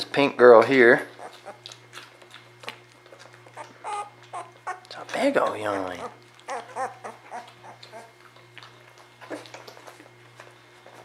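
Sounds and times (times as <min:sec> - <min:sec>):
steady low hum: 0:00.0 - 0:11.0
puppy squeaking: 0:01.1 - 0:01.8, 0:03.5 - 0:04.9, 0:05.8 - 0:08.2.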